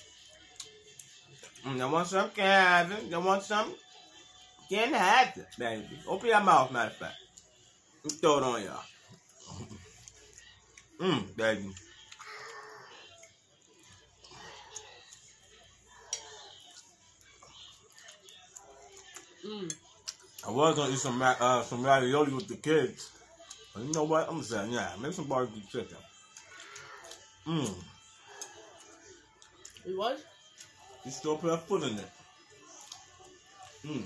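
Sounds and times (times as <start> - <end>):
mouth clicks and smacks chewing: 17.8 - 20.5.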